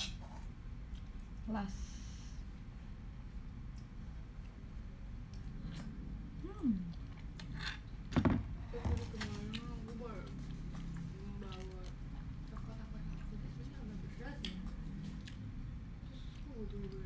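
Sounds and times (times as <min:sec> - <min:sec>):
small eating clicks: 0:09.2 - 0:17.0.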